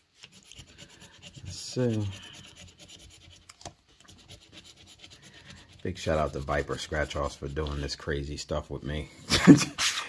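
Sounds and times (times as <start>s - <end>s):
coin scratching lottery ticket: 0.3s - 7.6s.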